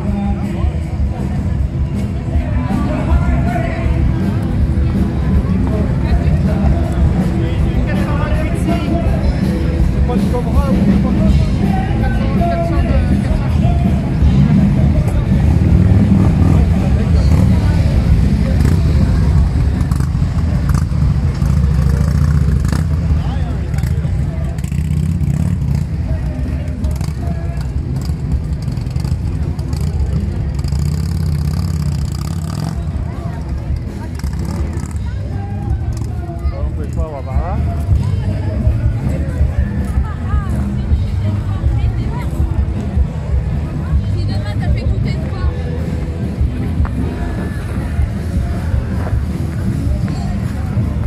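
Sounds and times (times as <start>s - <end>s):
crowd voices: 0.0s - 51.0s
vehicle engines idling: 0.0s - 51.0s.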